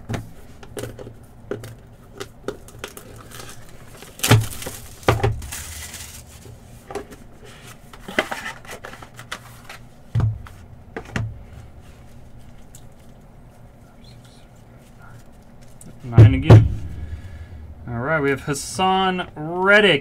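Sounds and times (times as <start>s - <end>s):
wrapper crinkling and tearing: 2.5s - 6.5s.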